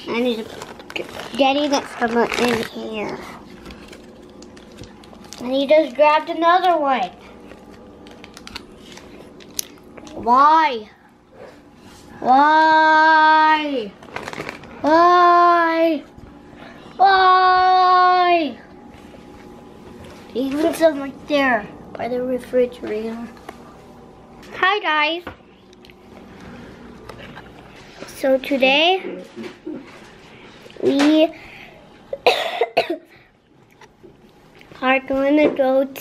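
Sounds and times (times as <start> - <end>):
plastic bags crinkling: 0.1 - 6.0, 7.1 - 10.2, 13.9 - 14.9.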